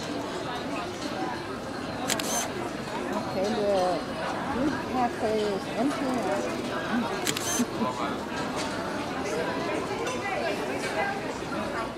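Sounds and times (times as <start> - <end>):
people talking: 0.0 - 11.9
camera shutter clicks: 2.1 - 2.5, 7.2 - 7.7.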